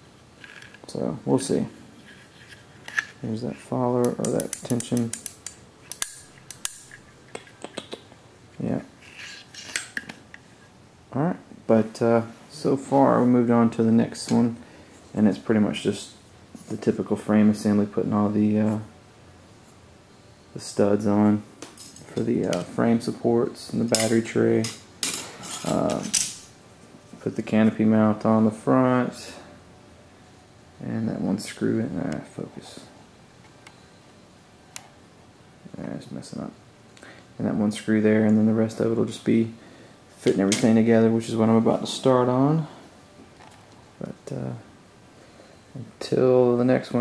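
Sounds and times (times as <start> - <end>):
metal on metal clicks: 4.0 - 8.0.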